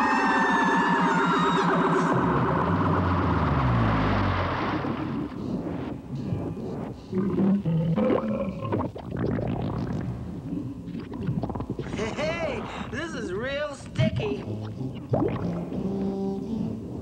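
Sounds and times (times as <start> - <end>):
cartoon tones sliding downward: 0.0 - 3.0
deep rumble: 0.0 - 13.0.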